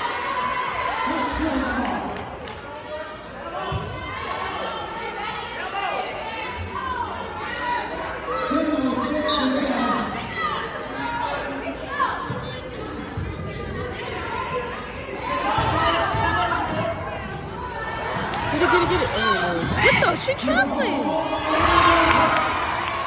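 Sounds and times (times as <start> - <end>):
spectators' voices echoing: 0.0 - 23.0
sneakers squeaking: 3.0 - 4.9, 5.6 - 22.1.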